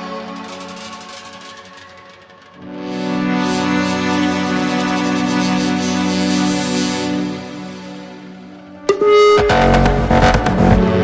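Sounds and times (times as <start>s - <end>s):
sustained synthesizer chord: 2.6s - 11.0s.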